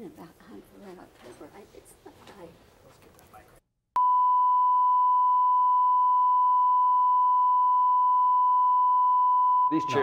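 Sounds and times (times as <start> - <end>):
steady test tone: 4.0 - 10.0.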